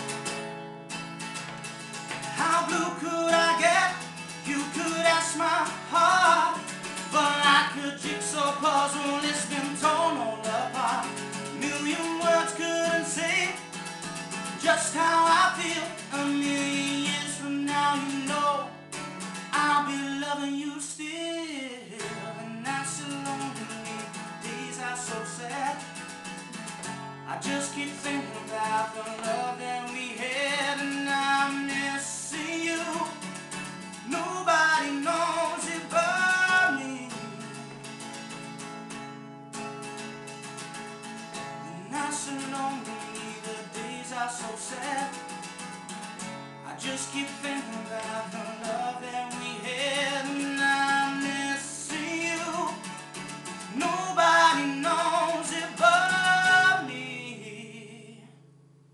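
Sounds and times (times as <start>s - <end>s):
acoustic guitar strumming: 0.0s - 58.9s
man singing: 2.2s - 26.0s, 27.2s - 37.8s, 41.6s - 45.4s, 46.6s - 58.4s.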